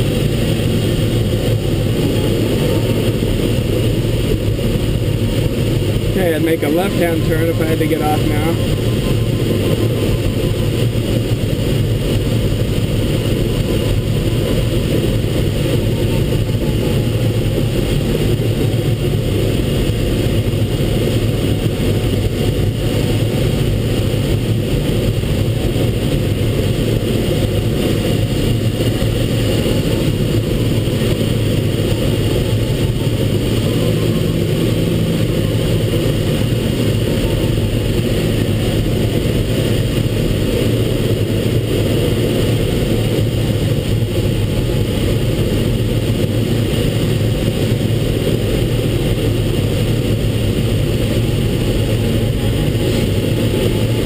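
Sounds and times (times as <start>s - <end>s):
airflow rushing over canopy: 0.0s - 54.0s.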